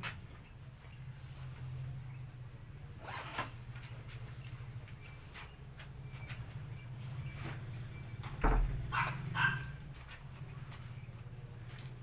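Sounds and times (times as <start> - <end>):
zipper rasp: 3.0 - 3.6.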